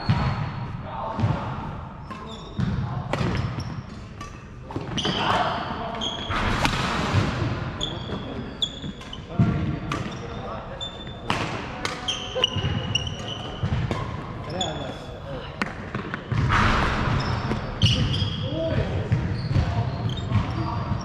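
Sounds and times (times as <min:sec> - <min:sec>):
racket hitting shuttlecock: 0:01.2 - 0:05.6, 0:06.4 - 0:10.4, 0:11.2 - 0:14.3
shoes squeaking on floor: 0:02.0 - 0:06.7, 0:07.7 - 0:11.3, 0:11.9 - 0:15.2, 0:16.0 - 0:21.0.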